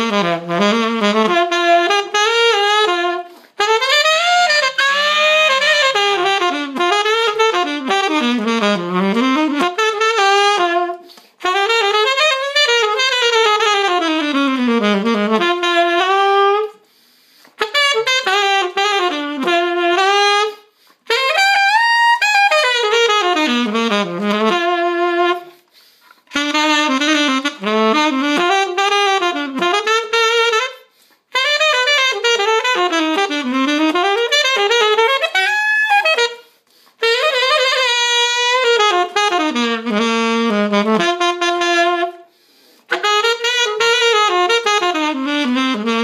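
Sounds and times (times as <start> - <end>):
alto saxophone solo: 0.0 - 46.0.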